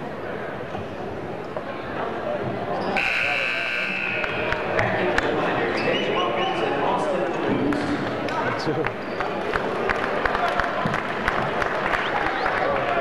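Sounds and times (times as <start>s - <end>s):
crowd voices: 0.0s - 13.0s.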